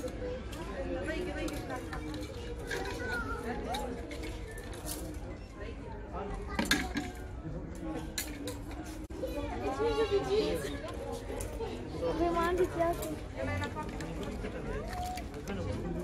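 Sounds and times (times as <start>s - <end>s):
faint background voices: 0.0s - 16.0s.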